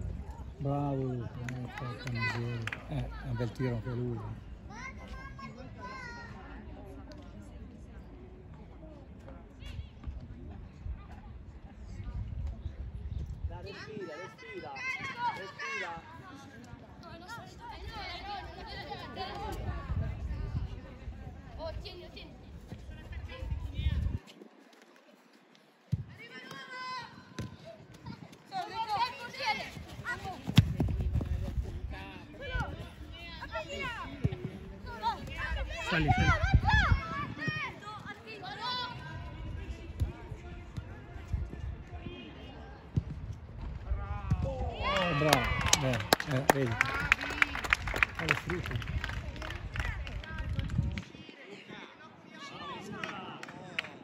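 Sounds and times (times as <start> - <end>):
wind rumble on microphone: 9.8 - 13.6, 19.5 - 24.4, 30.6 - 33.1, 35.4 - 37.4, 47.6 - 51.2
football being kicked: 30.4 - 31.4
people shouting and calling out: 32.0 - 39.3.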